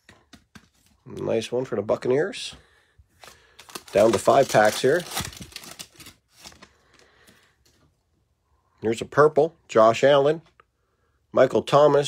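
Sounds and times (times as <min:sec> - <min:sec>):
foil wrapper rustling: 0:03.2 - 0:06.7.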